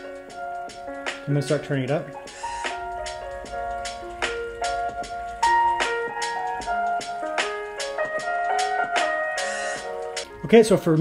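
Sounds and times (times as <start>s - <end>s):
music through laptop speakers: 0.0s - 11.0s.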